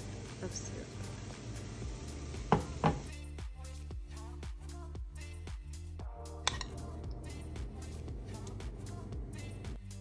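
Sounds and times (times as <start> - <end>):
kitchenware knocks: 2.5 - 3.1.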